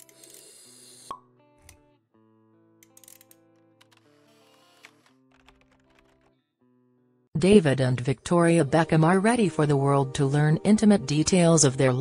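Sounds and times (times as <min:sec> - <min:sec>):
soft background music: 0:00.0 - 0:06.2, 0:07.4 - 0:12.0.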